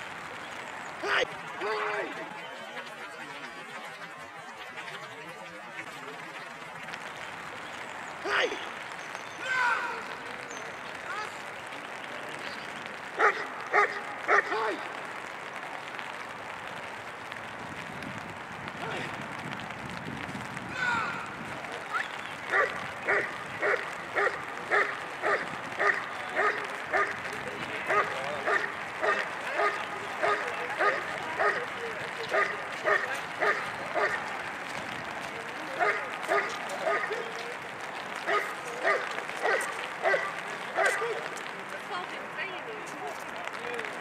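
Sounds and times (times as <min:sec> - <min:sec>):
dog barking: 0:13.2 - 0:14.5, 0:22.5 - 0:27.2, 0:27.9 - 0:31.7, 0:32.3 - 0:34.2, 0:35.8 - 0:37.2, 0:38.3 - 0:41.2.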